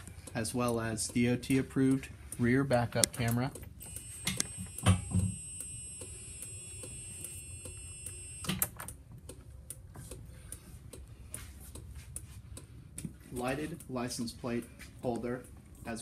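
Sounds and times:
light regular clicking: 0.0 - 4.8, 5.6 - 15.8.

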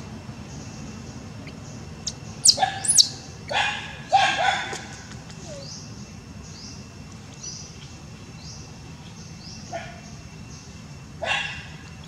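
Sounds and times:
infant monkey squealing: 2.4 - 3.2.

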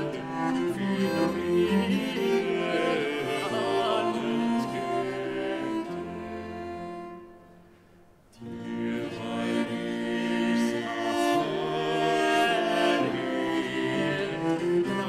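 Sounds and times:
bass viol: 0.0 - 7.8, 8.4 - 15.0
lute: 0.0 - 15.0
second viol: 0.0 - 15.0.

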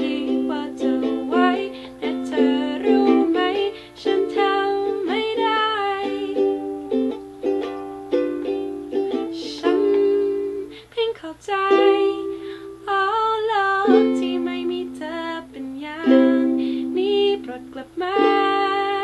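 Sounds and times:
woman singing pop song: 0.0 - 6.9, 9.3 - 19.0
ukulele strumming chords: 0.0 - 10.8, 11.6 - 19.0.

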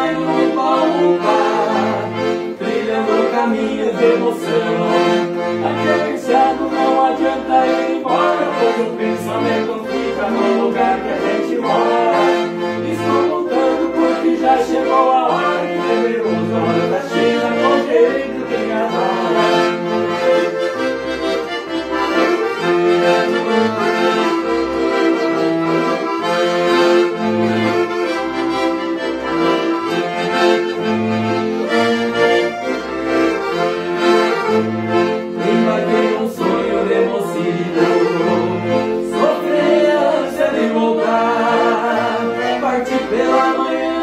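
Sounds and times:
accordions playing: 0.0 - 44.0.

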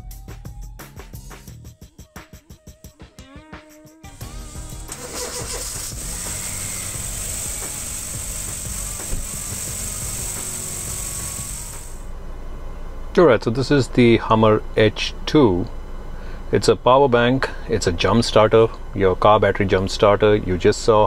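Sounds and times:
car engine starting and idling: 4.1 - 12.1
high hiss: 4.2 - 12.0.

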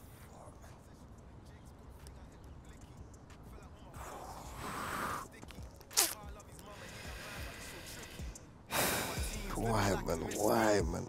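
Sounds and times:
rap music: 0.0 - 11.0
man breathing faintly: 4.0 - 5.5, 6.6 - 9.7.

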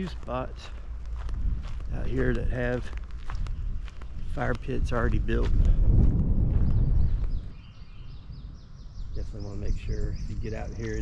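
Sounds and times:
footsteps crunching on gravel: 0.0 - 7.6
wind buffeting microphone: 0.0 - 11.0
faint bird chirps: 6.6 - 11.0.

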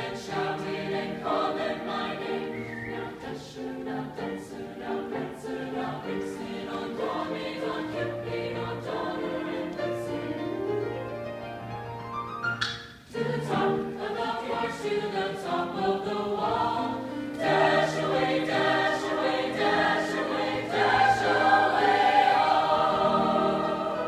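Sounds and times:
mixed choir singing: 0.0 - 10.3, 13.1 - 24.0.

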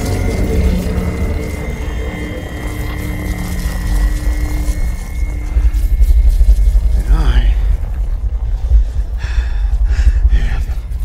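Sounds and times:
thin steady high tone: 0.0 - 8.3
deep rumble: 0.0 - 11.0.

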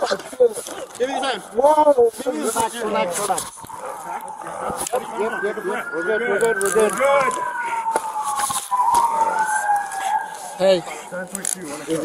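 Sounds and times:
police siren wailing: 0.6 - 12.0.

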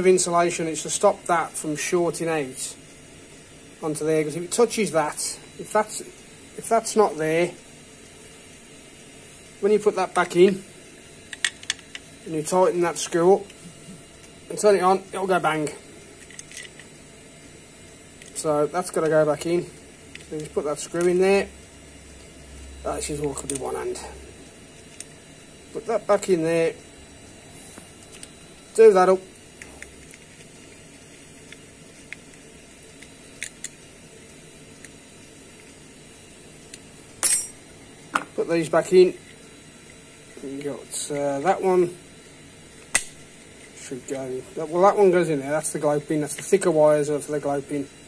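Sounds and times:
steady low hiss: 0.0 - 48.0
sharp metallic clink: 37.2 - 37.6.

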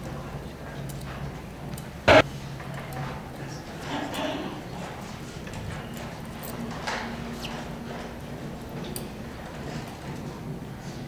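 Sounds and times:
censer chains clinking: 2.7 - 10.2.

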